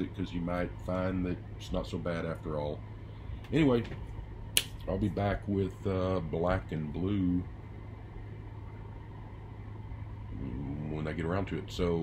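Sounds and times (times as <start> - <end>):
low hum and faint hiss: 0.0 - 12.0.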